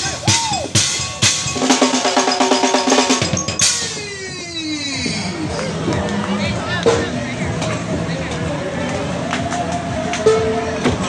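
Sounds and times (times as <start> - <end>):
drum strikes: 0.0 - 4.2, 6.8 - 8.0.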